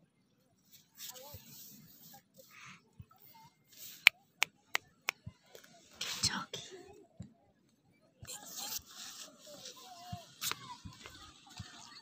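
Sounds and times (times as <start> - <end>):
breathy whisper: 2.1 - 4.0, 6.0 - 7.0.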